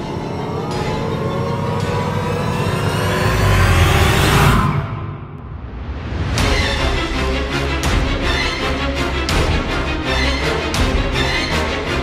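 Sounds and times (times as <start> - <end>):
deep rumble: 0.0 - 8.4
rising layered suspense tones: 0.0 - 12.0.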